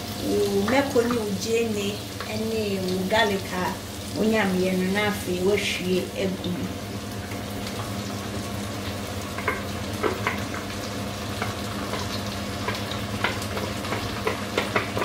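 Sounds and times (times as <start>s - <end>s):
onions sizzling in a pan: 0.0s - 15.0s.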